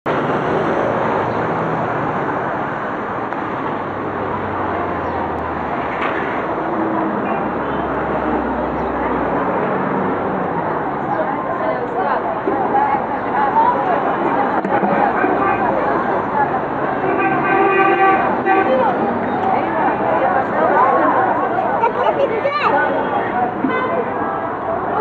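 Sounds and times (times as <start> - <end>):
traffic noise: 0.0 - 25.0
people talking: 7.1 - 25.0.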